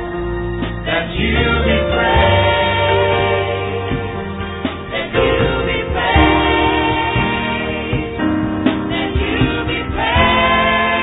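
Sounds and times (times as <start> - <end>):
choir singing gospel: 0.0 - 11.0.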